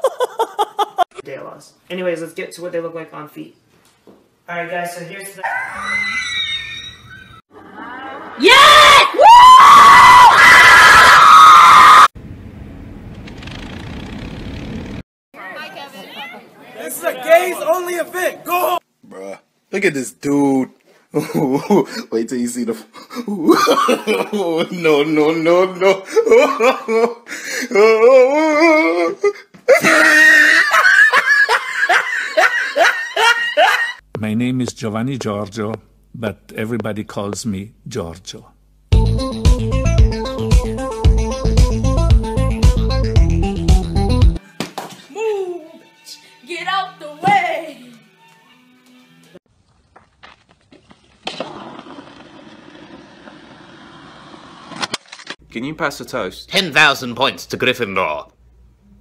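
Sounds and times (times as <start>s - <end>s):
person laughing in high bursts: 0.0s - 1.1s, 29.7s - 34.0s
man's high-pitched shriek: 5.4s - 7.4s.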